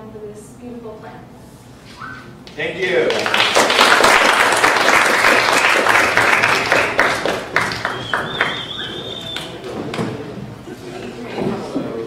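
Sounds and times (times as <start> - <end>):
audience applauding: 2.8 - 10.1.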